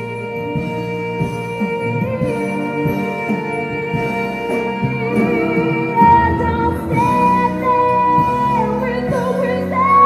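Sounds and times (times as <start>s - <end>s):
musical theatre orchestra playing: 0.0s - 10.0s
woman singing a high note: 5.0s - 9.1s.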